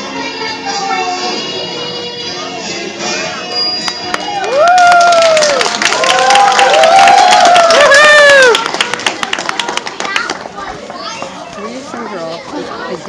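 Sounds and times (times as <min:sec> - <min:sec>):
children chattering: 0:00.0 - 0:03.6, 0:08.5 - 0:13.0
sharp claps: 0:03.9 - 0:10.5.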